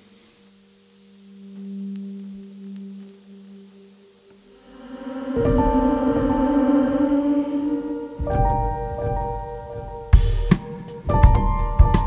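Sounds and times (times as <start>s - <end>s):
low sustained instrument note: 0.0s - 10.2s.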